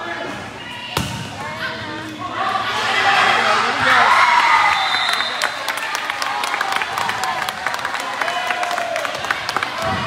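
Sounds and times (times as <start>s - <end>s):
people's voices in gym: 0.0s - 10.0s.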